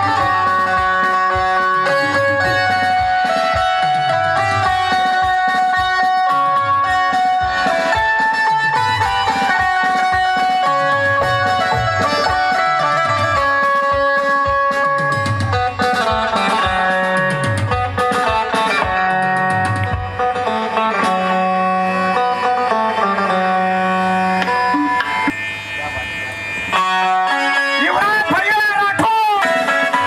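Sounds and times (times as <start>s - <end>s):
harmonium: 0.0s - 30.0s
plucked string instrument: 0.0s - 30.0s.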